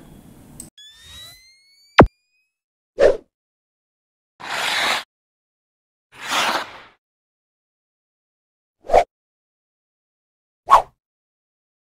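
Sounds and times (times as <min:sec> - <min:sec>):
thin rising tone: 0:00.8 - 0:02.6.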